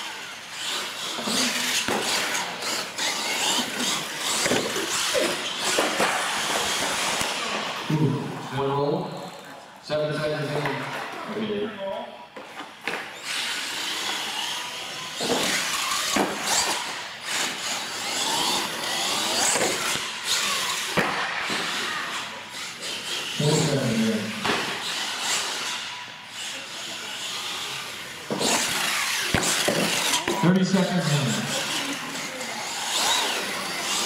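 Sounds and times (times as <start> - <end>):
toy truck motor whining: 0.0 - 7.9, 12.8 - 34.0.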